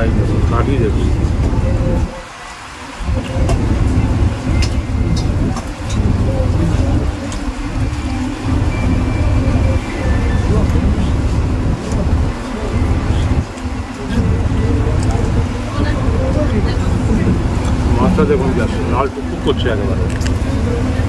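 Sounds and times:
boat engine rumble: 0:00.0 - 0:21.0.

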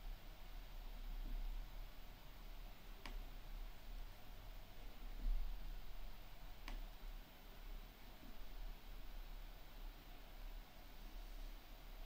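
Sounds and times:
faint steady hiss: 0:00.0 - 0:12.0
low mains hum: 0:00.0 - 0:12.0.

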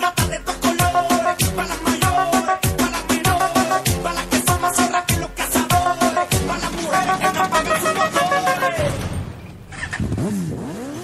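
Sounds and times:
music: 0:00.0 - 0:09.5.

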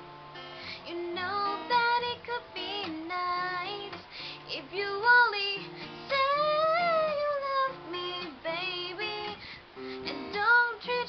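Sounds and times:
acoustic guitar: 0:00.0 - 0:11.0
woman singing a slow ballad: 0:00.6 - 0:11.0.

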